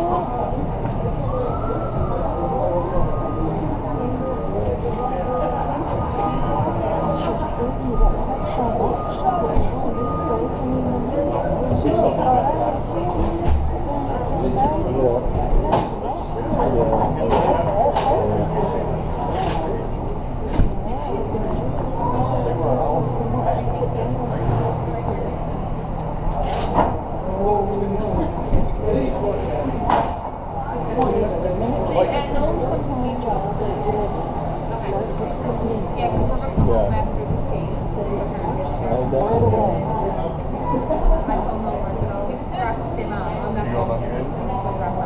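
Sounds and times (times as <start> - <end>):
muffled voices talking: 0.0 - 45.0.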